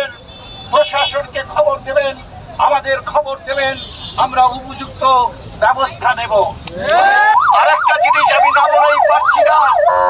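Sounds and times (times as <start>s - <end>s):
man speaking through megaphone: 0.0s - 10.0s
street noise: 0.0s - 10.0s.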